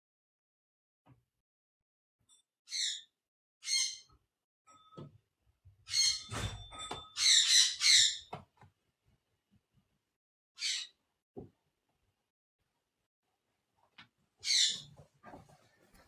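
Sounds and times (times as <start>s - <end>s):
harsh high-pitched animal squawks: 10.6s - 11.0s.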